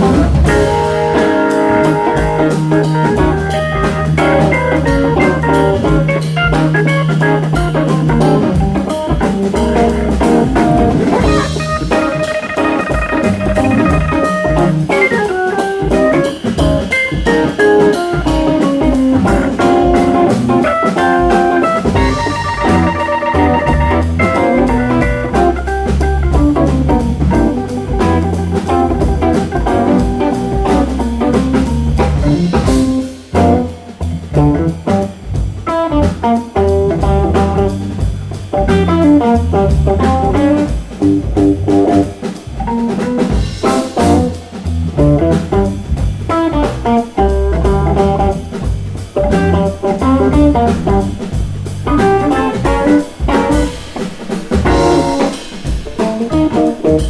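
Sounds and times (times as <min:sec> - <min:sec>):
drum kit: 0:00.0 - 0:57.0
electric guitar: 0:00.0 - 0:57.0
organ: 0:00.0 - 0:57.0.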